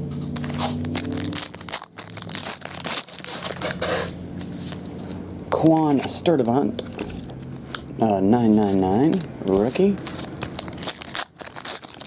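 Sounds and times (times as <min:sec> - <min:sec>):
foil wrapper tearing and crinkling: 0:00.4 - 0:04.1, 0:10.0 - 0:12.0.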